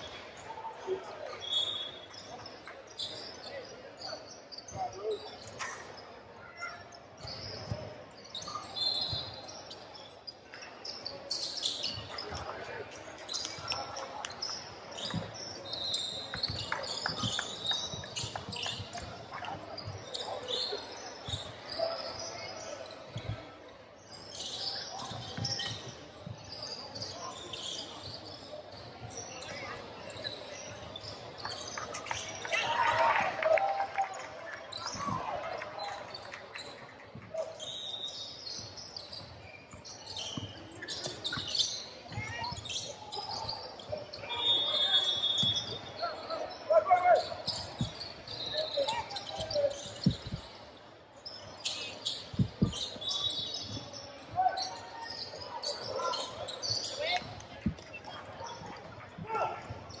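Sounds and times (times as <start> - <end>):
sneaker squeaks: 0.0 - 33.2, 34.7 - 60.0.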